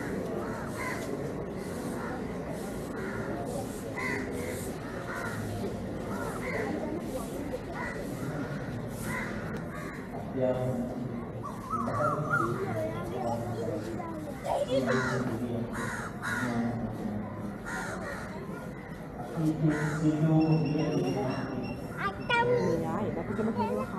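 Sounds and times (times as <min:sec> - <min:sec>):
crows cawing: 0:00.0 - 0:02.3, 0:04.0 - 0:06.7, 0:07.8 - 0:10.2, 0:14.9 - 0:16.6, 0:17.6 - 0:18.8
crowd talking: 0:00.0 - 0:23.9.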